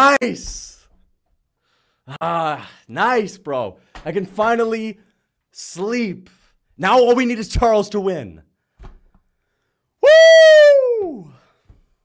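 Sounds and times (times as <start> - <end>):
man cheering woo: 10.0 - 11.4.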